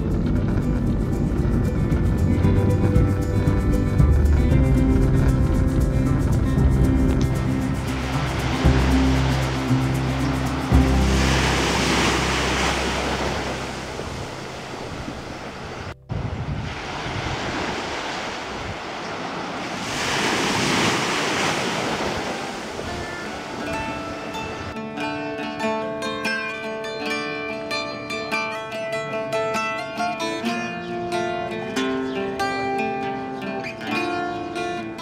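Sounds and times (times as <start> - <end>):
ocean waves breaking: 0.0 - 24.8.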